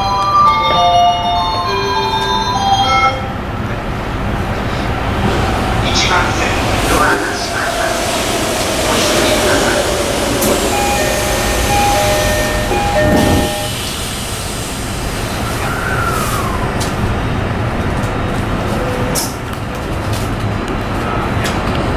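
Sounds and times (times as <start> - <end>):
train wheels rumbling on rails: 3.2 - 21.9
traction motors whining: 4.5 - 17.2.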